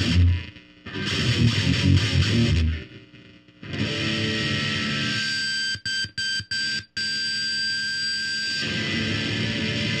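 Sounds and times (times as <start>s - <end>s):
distorted electric guitar chops: 0.0s - 10.0s.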